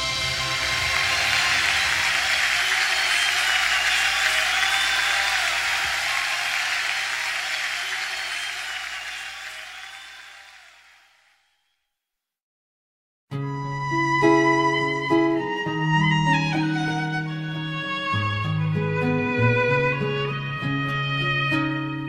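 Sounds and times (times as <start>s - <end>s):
audience applauding: 0.0s - 11.3s.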